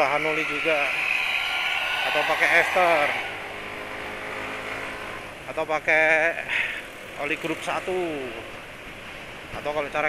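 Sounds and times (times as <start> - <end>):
scooter engine droning: 0.0 - 5.6
road noise: 0.0 - 10.0.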